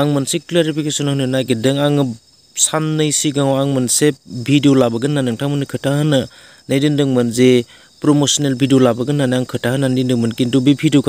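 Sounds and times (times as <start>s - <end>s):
insects trilling: 0.0s - 11.0s
man talking: 0.0s - 11.0s.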